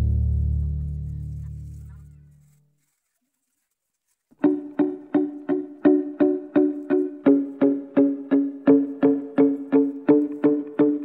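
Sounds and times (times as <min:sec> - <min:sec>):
low note of background music: 0:00.0 - 0:02.0.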